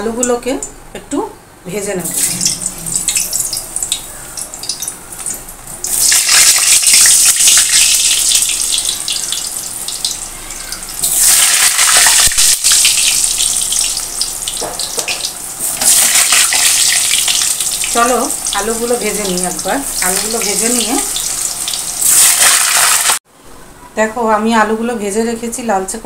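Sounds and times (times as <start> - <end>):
potatoes sizzling in hot oil: 2.1 - 23.2.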